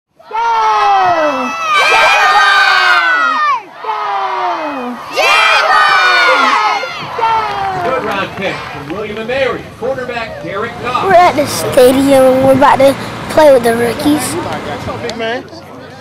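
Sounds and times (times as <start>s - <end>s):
children shouting together: 0.2s - 7.9s.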